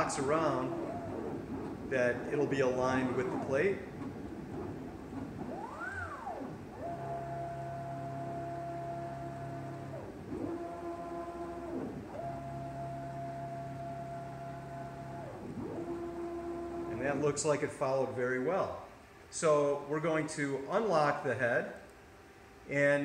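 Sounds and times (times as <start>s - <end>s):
drive motors whining: 0.0s - 17.2s.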